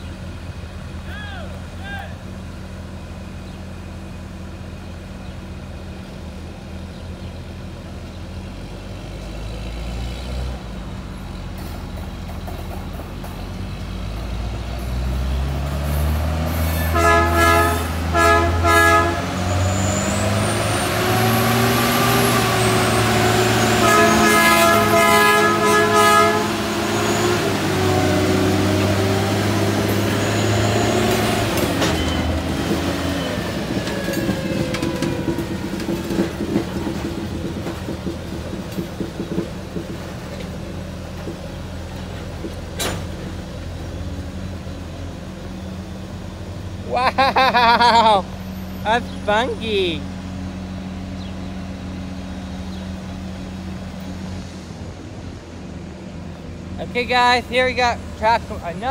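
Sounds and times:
diesel engine working hard: 0.0 - 58.9
rail cars clanking: 10.6 - 58.9
short horn blasts: 16.7 - 19.8, 23.6 - 27.2.

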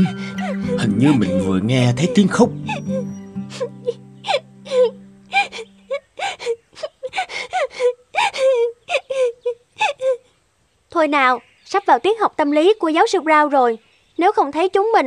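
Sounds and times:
woman sobbing and whimpering: 0.0 - 10.3.

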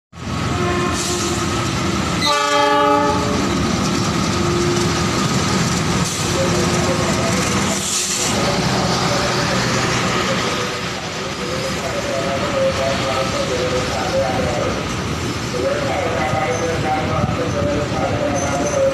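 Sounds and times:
train rumble: 0.2 - 18.9
train horn: 0.5 - 1.5, 2.2 - 3.5.

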